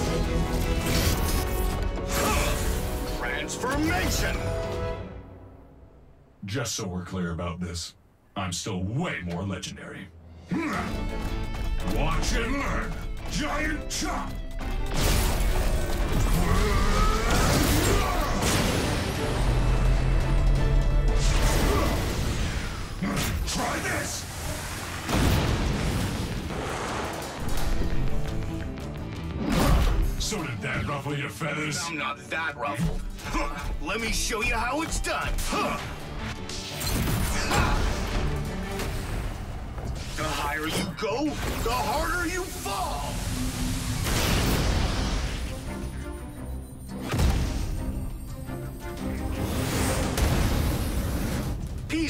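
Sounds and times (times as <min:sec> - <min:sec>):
dramatic action music: 0:00.0 - 0:06.4, 0:10.2 - 0:52.0
cartoon explosions: 0:14.9 - 0:19.6, 0:21.2 - 0:27.8, 0:36.8 - 0:45.7, 0:49.4 - 0:52.0.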